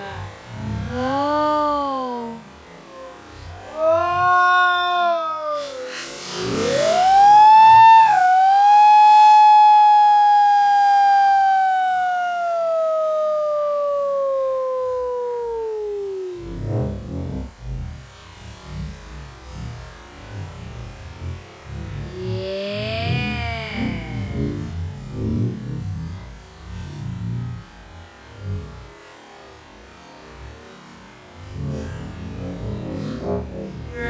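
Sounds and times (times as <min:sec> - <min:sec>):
slowed churning water rumble: 0:00.0 - 0:04.1, 0:15.0 - 0:34.0
slowed pitched-down shout: 0:00.0 - 0:28.9, 0:31.4 - 0:34.0.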